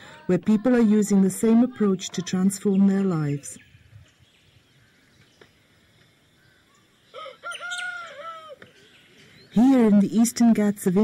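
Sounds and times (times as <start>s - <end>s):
rooster crowing: 7.1s - 8.7s.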